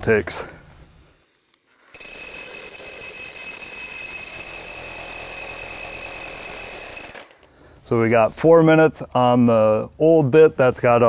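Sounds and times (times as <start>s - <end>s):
rotary hammer drilling concrete: 1.8s - 7.5s.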